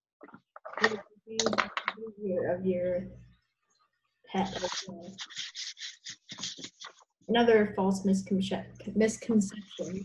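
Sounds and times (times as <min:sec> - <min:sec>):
low voice: 0:00.2 - 0:03.2, 0:04.3 - 0:07.8, 0:08.5 - 0:10.0
indistinct speech over video call: 0:00.2 - 0:03.3, 0:04.3 - 0:10.0.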